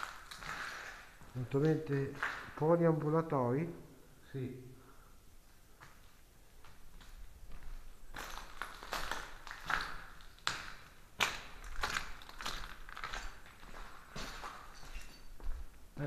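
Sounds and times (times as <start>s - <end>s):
footsteps on rubble-strewn tiles: 5.8s - 15.8s.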